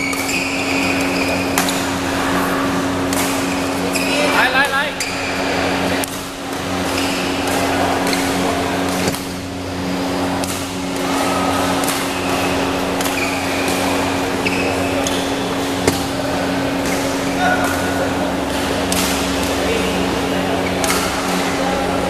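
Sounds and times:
murmur of voices: 0.0 - 22.0
steady low hum: 0.0 - 22.0.

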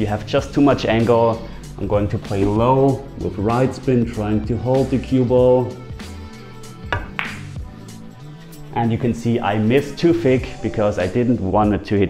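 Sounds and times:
background music: 0.0 - 12.0
billiard balls clicking: 6.9 - 7.5
cue tip striking ball: 6.9 - 7.6.

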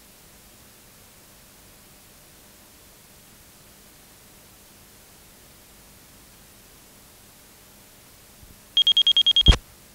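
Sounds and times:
recording hiss: 0.0 - 9.9
high-pitched electronic beeps: 8.8 - 9.6.

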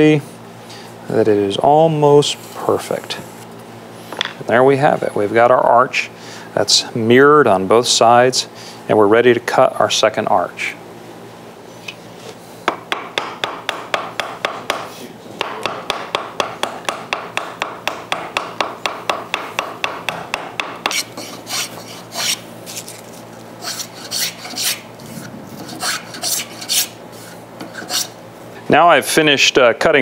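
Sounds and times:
spokeshave shaving wood: 20.9 - 24.8.

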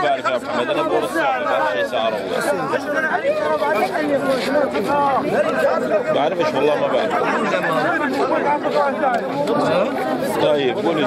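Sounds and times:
overlapping crowd chatter: 0.0 - 11.0.

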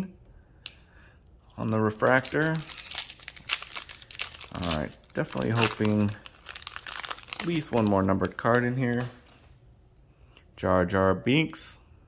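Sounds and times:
foil wrapper crinkling: 1.6 - 9.4.

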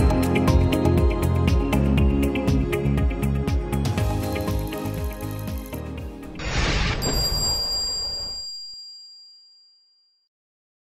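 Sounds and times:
high bell-like chime: 6.6 - 10.3.

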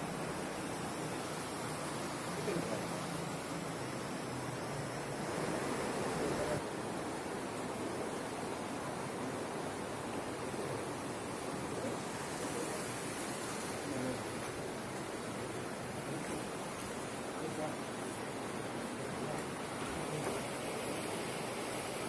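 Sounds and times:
flowing water rushing: 0.0 - 22.0.

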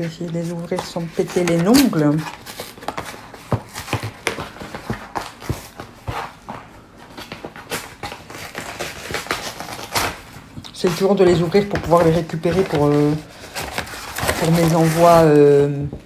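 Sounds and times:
envelope rustling and crinkling: 0.0 - 16.0.

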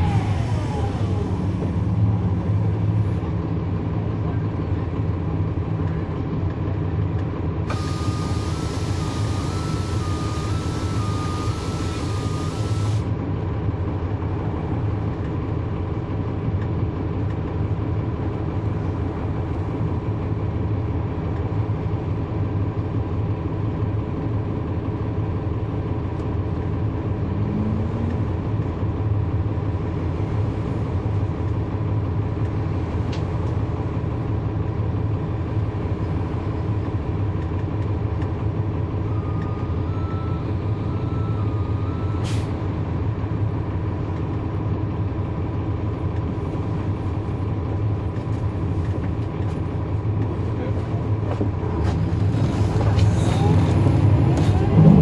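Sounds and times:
bus diesel engine running: 0.0 - 55.0.

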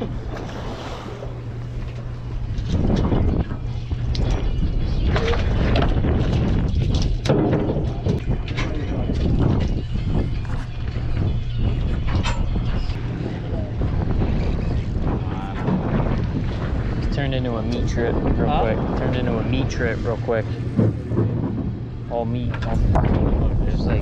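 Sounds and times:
boat engine drone: 0.0 - 24.0
wind on microphone: 0.0 - 24.0.

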